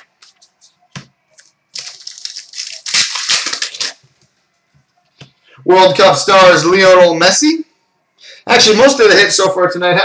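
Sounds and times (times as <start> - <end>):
foil wrapper tearing and crinkling: 1.7 - 4.0.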